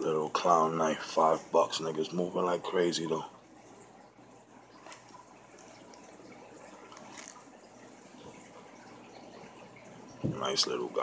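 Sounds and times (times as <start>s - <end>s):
faint trickle of water: 0.0s - 11.0s.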